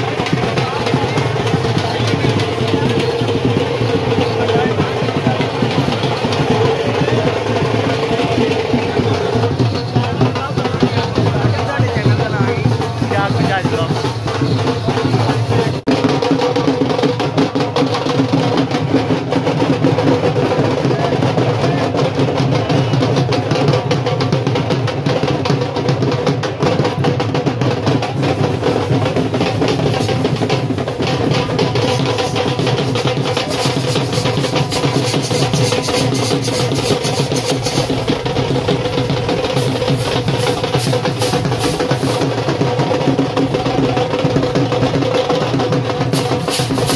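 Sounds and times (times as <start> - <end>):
fast drumming: 0.0 - 46.9.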